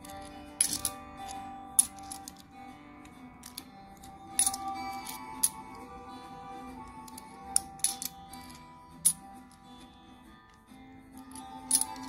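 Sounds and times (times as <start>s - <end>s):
acoustic guitar music: 0.0s - 12.0s
coins clinking: 0.0s - 12.0s.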